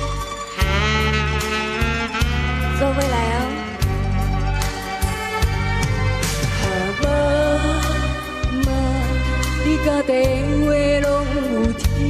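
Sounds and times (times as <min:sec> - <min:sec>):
live band playing: 0:00.0 - 0:10.4
woman singing into a microphone: 0:02.8 - 0:03.7, 0:06.6 - 0:12.0.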